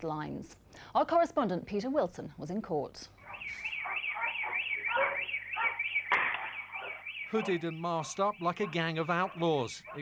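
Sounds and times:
electronic alarm siren warbling: 3.2 - 10.0.

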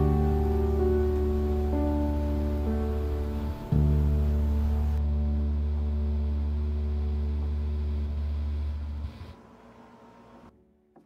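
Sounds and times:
deep bass note: 0.0 - 9.2.

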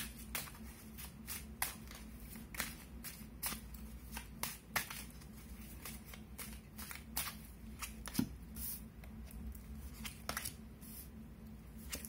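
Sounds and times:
cards being shuffled: 0.0 - 9.2
low steady hum: 0.0 - 12.0.

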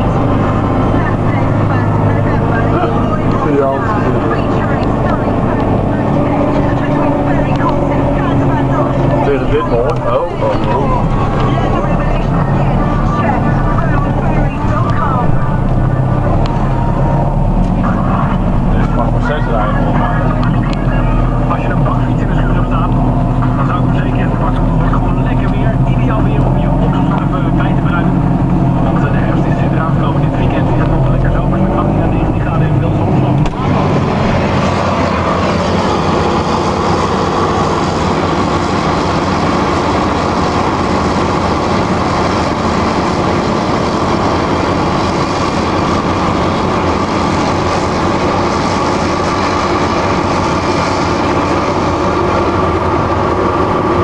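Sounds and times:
tractor engines: 0.0 - 54.0.

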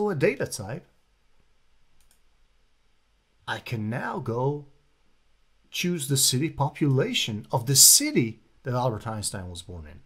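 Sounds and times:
computer mouse click: 2.0 - 2.3.

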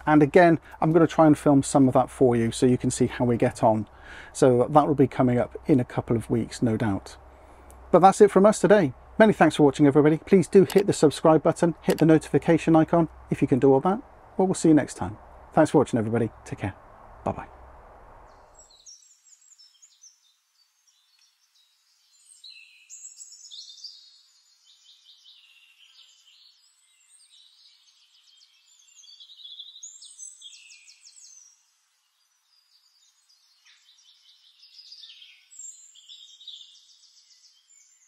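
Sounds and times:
birds chirping and trilling: 0.0 - 17.4, 18.2 - 38.0.

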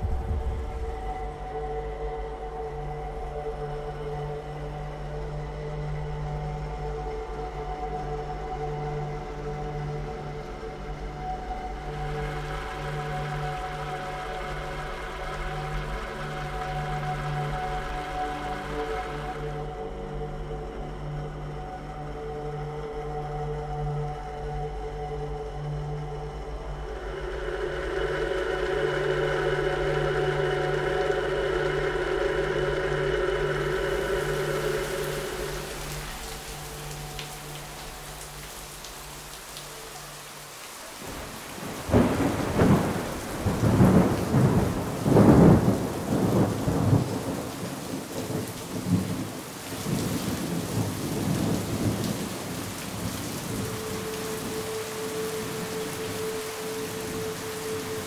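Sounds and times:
thunder rumbling: 0.0 - 1.4, 41.0 - 54.6
heavy rain falling: 0.0 - 22.2, 25.4 - 58.0
steady droning tone: 0.0 - 58.0.

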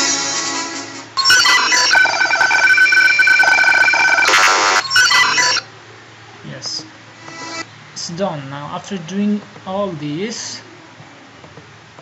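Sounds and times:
electronic telephone ringing: 1.2 - 5.6.

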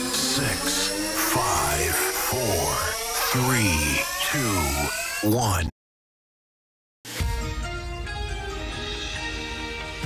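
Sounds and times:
downward-sliding pitched sounds: 0.0 - 5.3
rising tones: 0.0 - 5.4.

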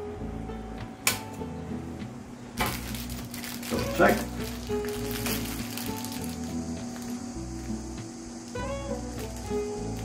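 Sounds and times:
faint guitar music: 0.0 - 10.0.

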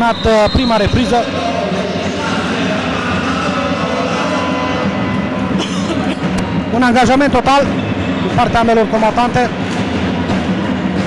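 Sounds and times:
murmur of spectators' voices: 0.0 - 11.0.

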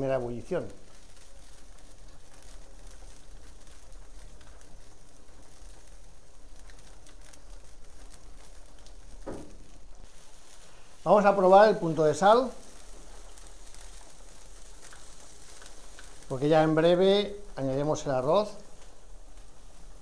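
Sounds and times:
burning wood crackling: 0.0 - 20.0
stock boiling with bubbling hiss: 0.0 - 20.0.

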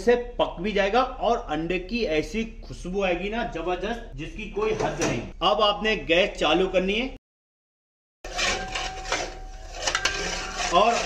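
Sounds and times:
metal spatula scraping pan: 8.2 - 11.0.

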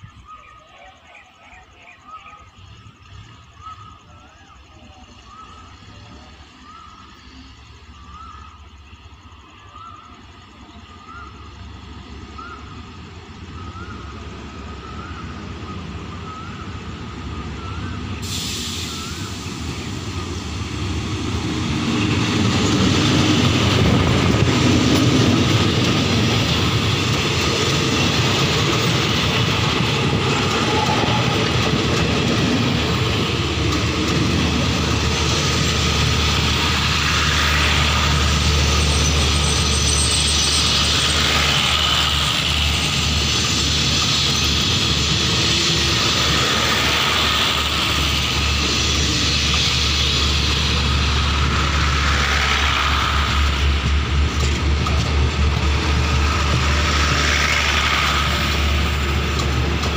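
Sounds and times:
diesel locomotive passing: 0.0 - 59.9
train wheels rumbling on rails: 1.6 - 59.9.

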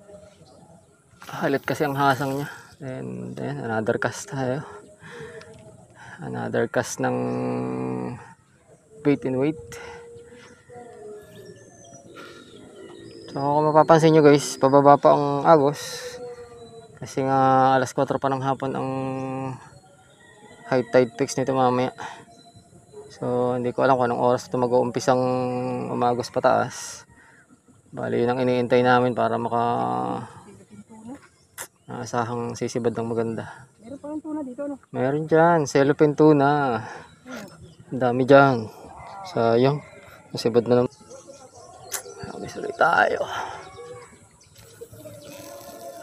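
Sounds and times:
faint bird calls: 4.6 - 18.0, 35.8 - 46.0.

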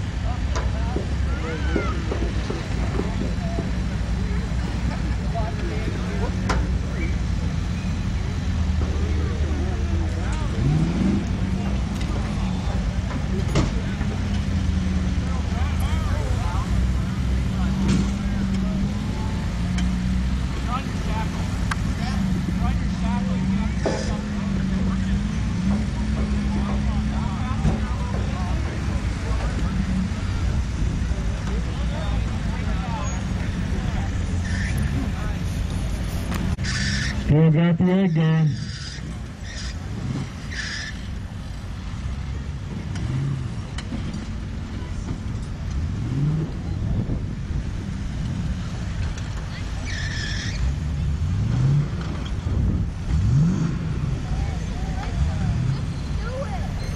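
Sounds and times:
car engine at low revs: 0.0 - 56.9
crowd voices: 0.0 - 56.9.

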